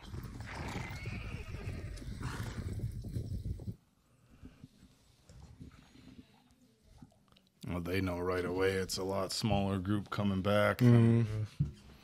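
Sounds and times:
horse whinny: 0.0s - 2.8s.

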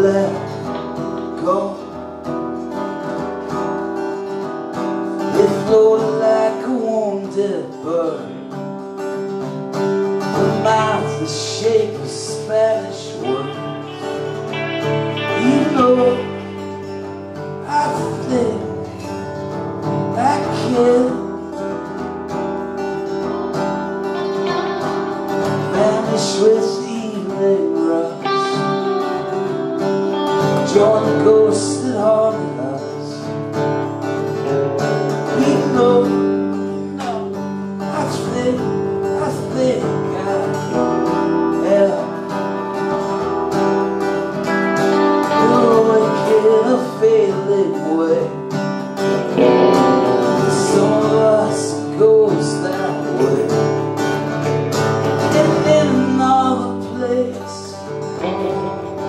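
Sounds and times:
acoustic guitar strumming: 0.0s - 59.0s
electric guitar lead lines: 0.0s - 59.0s.

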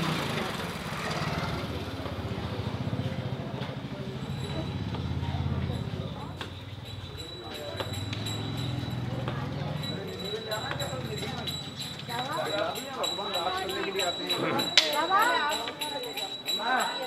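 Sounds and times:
people talking: 0.0s - 17.0s.

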